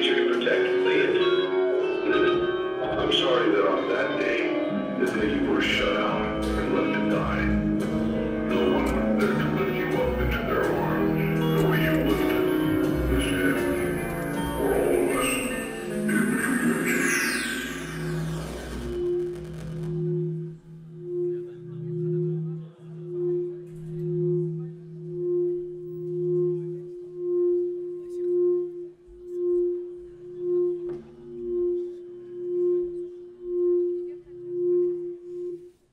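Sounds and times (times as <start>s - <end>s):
low drone: 5.0s - 25.8s
low pulsing electronic tone: 5.0s - 35.8s
dense music with falling high sweeps: 12.0s - 20.8s.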